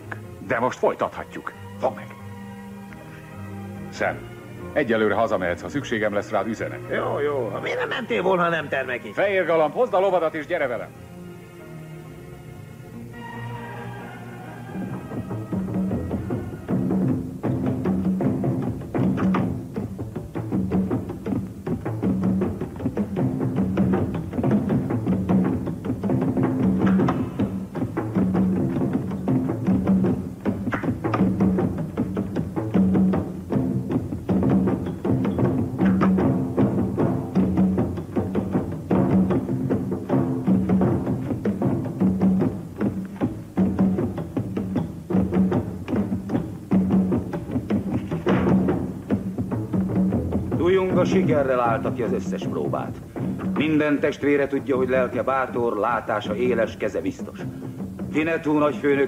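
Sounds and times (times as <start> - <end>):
steady drumming: 3.9 - 10.9, 14.2 - 59.0.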